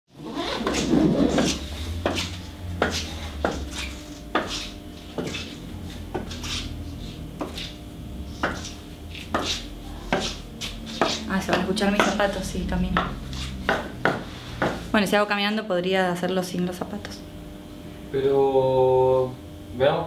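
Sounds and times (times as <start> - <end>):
low steady hum: 0.2 - 20.0
hard-soled footsteps on floor: 0.7 - 6.5, 8.4 - 15.0.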